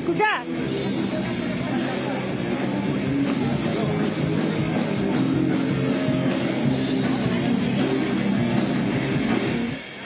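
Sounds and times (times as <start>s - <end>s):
drums: 0.0s - 10.0s
electric guitar: 0.0s - 10.0s
live rock band: 0.0s - 10.0s.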